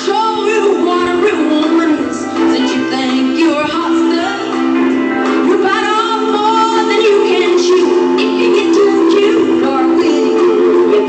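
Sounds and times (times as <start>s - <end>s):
woman singing: 0.0s - 4.6s, 5.2s - 11.0s
live country band playing: 0.0s - 11.0s.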